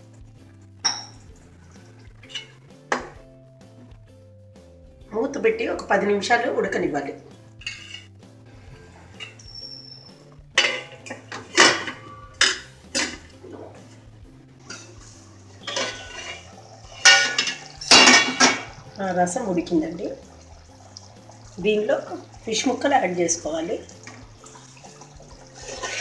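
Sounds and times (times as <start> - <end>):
metal kitchenware clinking on a pot: 0.8 - 1.3, 2.2 - 3.2, 7.6 - 8.2, 9.1 - 14.0, 14.6 - 26.0.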